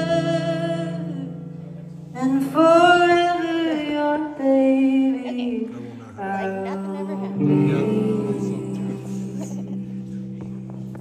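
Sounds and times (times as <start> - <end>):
electric guitar and bass: 4.3 - 11.0.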